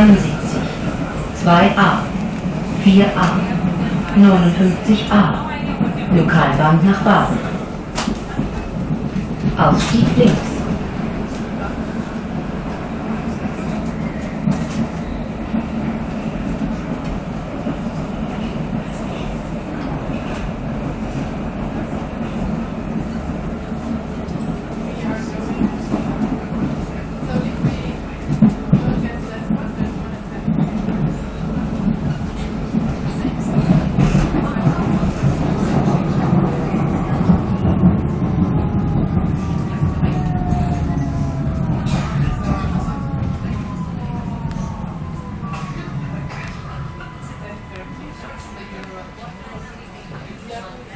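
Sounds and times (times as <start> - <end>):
metro train rumbling in tunnel: 0.0 - 50.9
train brakes whining: 44.5 - 50.7.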